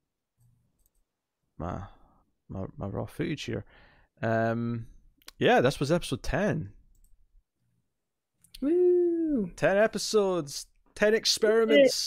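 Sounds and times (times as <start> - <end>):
man talking: 9.2 - 12.0.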